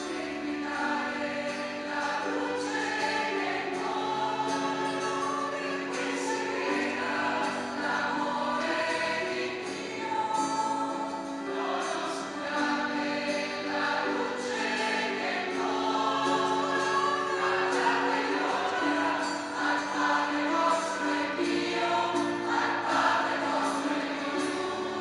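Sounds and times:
choir singing slow music: 0:00.0 - 0:25.0.

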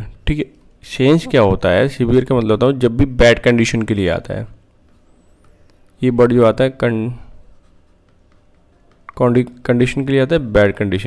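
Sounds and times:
person speaking: 0:00.0 - 0:04.6
stylus scratching on pen tablet: 0:04.8 - 0:10.0.

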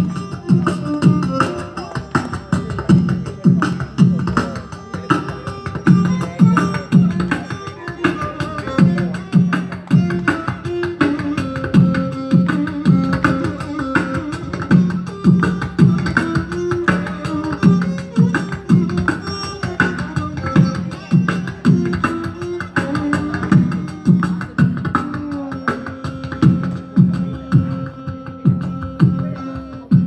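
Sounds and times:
beatboxing through microphone: 0:00.0 - 0:30.0
violin melody: 0:00.0 - 0:30.0.

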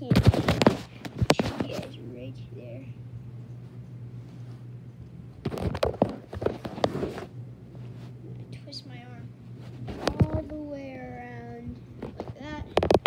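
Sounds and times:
steady low hum: 0:00.0 - 0:13.0
phone handling knocks and rustles: 0:12.0 - 0:13.0.

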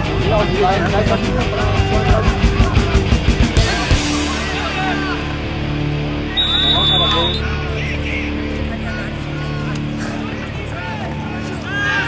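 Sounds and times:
music through loudspeaker: 0:00.0 - 0:12.0
voices shouting: 0:00.0 - 0:12.0
referee's whistle blast: 0:06.3 - 0:07.5.

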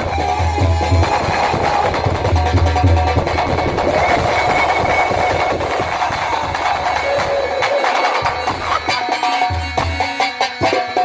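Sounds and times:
hand drums fast rhythm: 0:00.0 - 0:11.0.

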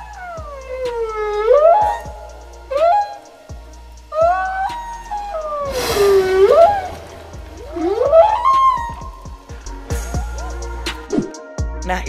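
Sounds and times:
rushing noise: 0:00.0 - 0:09.7
humpback whale song: 0:00.0 - 0:11.3.

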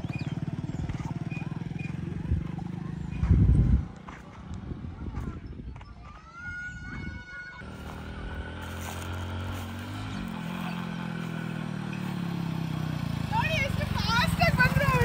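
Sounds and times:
motorcycle approaching: 0:00.0 - 0:15.0
voices calling out: 0:00.0 - 0:15.0.

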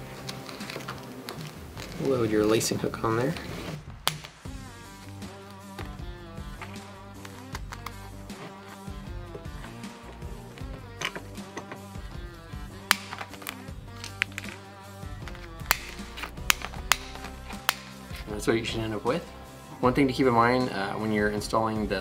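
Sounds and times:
background music with beat: 0:00.0 - 0:22.0
rivet gun clicks and snaps: 0:06.6 - 0:08.0, 0:12.8 - 0:18.2.

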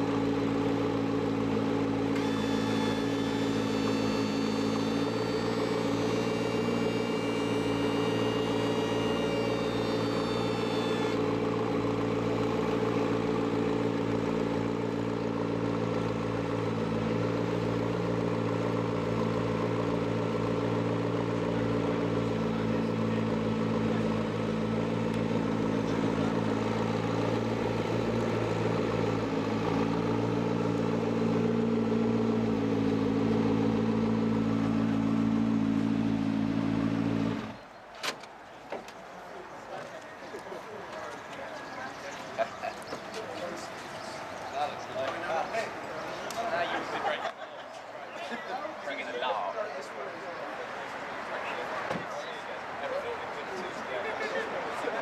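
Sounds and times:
car engine idling: 0:00.0 - 0:37.8
faint high whine: 0:02.2 - 0:11.3.

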